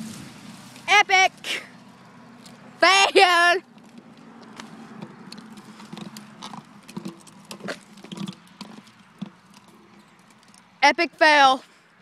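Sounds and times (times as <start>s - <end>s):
rusty chains clinking and creaking: 3.2s - 10.8s.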